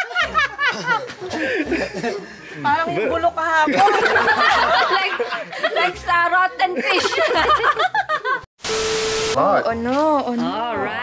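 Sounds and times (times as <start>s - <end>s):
people laughing: 0.0s - 2.6s, 3.6s - 8.5s
steady beep tone: 8.6s - 9.5s.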